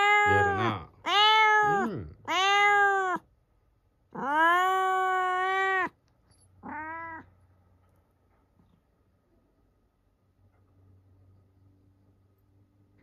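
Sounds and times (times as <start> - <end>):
cat meowing: 0.0 - 3.3, 4.1 - 6.0, 6.6 - 7.4.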